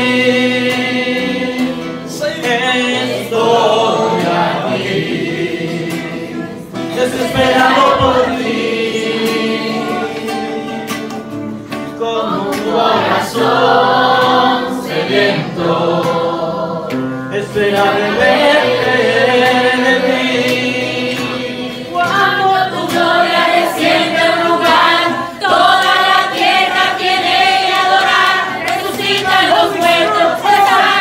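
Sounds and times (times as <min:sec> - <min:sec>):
men singing worship song: 0:00.0 - 0:11.3, 0:11.9 - 0:31.0
strummed acoustic guitar: 0:00.0 - 0:31.0.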